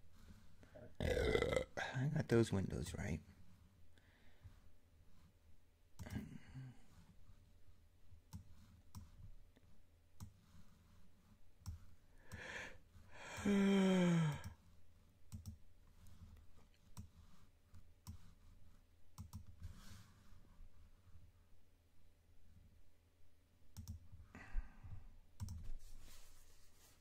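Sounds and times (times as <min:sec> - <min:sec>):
computer mouse and keyboard clicks: 0:08.3 - 0:09.2, 0:15.3 - 0:18.4, 0:19.1 - 0:19.9, 0:23.7 - 0:24.1, 0:25.4 - 0:25.7
man sighing loudly: 0:12.4 - 0:14.6.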